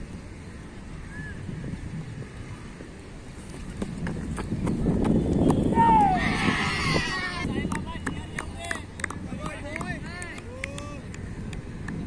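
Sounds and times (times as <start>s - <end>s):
person shouting: 5.8s - 7.4s.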